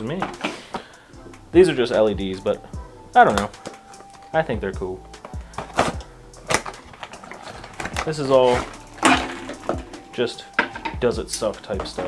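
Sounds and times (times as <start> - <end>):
faint background music: 0.0 - 12.0
cardboard box scraping rustles: 6.9 - 8.9.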